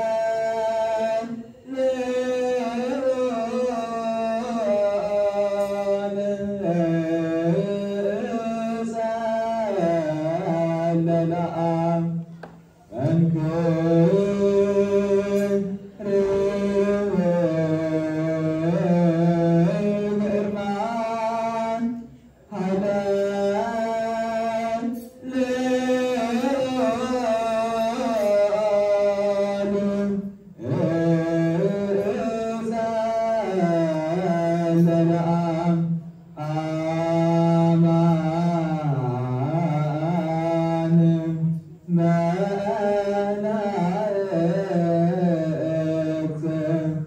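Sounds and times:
men chanting a hymn: 0.0 - 47.0.

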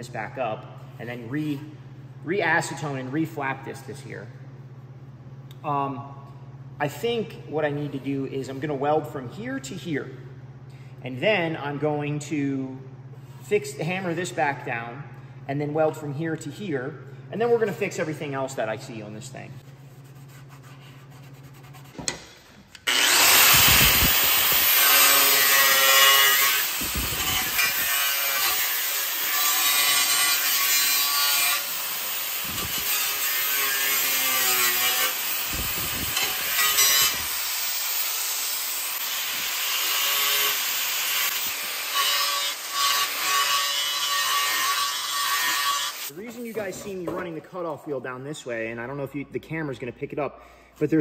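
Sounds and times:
angle grinder cutting metal: 22.8 - 46.1.

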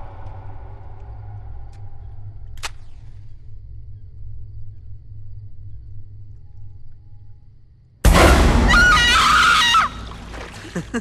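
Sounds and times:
low rumbling drone: 0.0 - 8.7.

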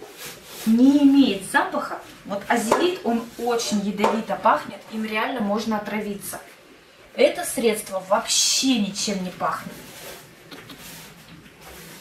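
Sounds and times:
paper napkin rubbing metal tray: 0.0 - 4.0, 8.9 - 12.0.

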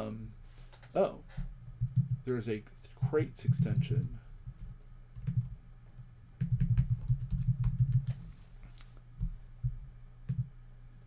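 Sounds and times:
typing on computer keyboard: 1.8 - 2.2, 3.4 - 5.5, 6.4 - 8.2.

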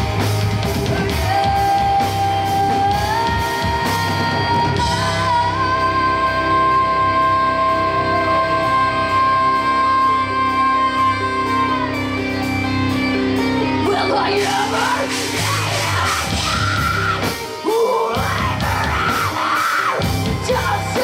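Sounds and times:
heavy metal band playing: 0.0 - 21.0
person yelling: 13.8 - 21.0.

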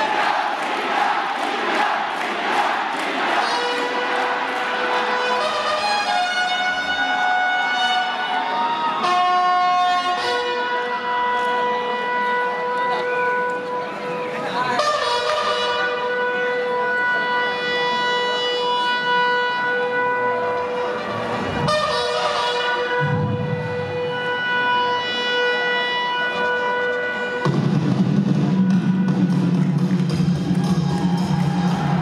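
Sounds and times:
crowd roar: 0.0 - 10.8, 20.2 - 32.0
drawn-out shout over loudspeakers: 0.0 - 27.5.

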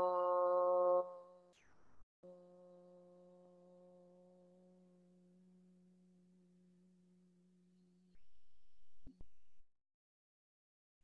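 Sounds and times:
chanted om hum: 2.2 - 7.0.

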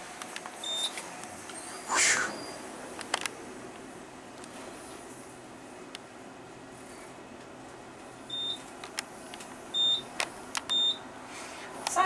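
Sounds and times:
elevator ride hum: 0.0 - 12.0.

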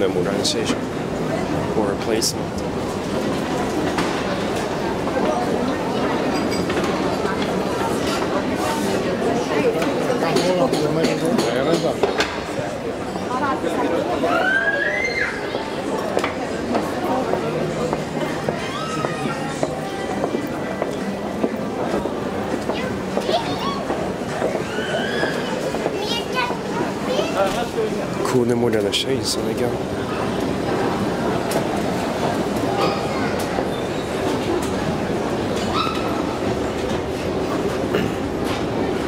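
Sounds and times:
voices of people: 0.0 - 39.0.

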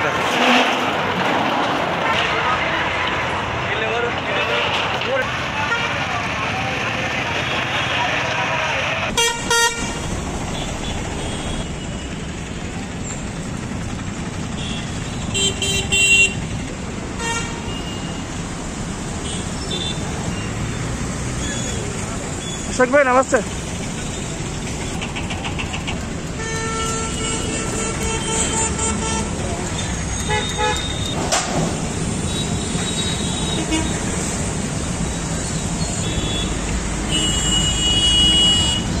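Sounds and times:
road traffic: 0.0 - 39.0
vehicle horns honking: 9.1 - 12.1, 14.5 - 16.5, 17.2 - 18.2, 26.4 - 31.2, 32.2 - 34.2, 35.9 - 39.0.

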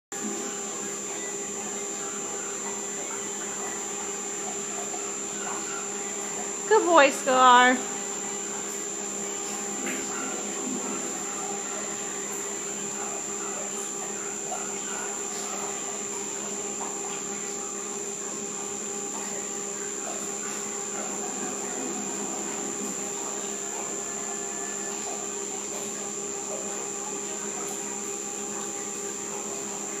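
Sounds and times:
high constant whine: 0.1 - 30.0
treadmill motor hum: 0.1 - 30.0.

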